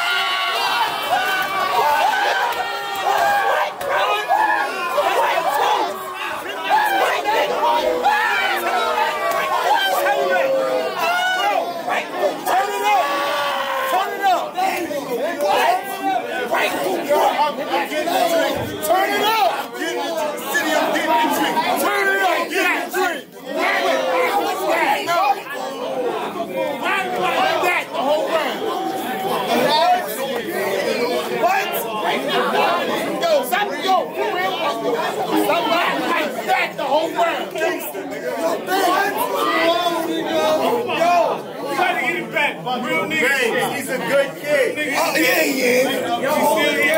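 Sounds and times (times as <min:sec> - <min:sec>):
crowd of men talking: 0:00.0 - 0:46.9.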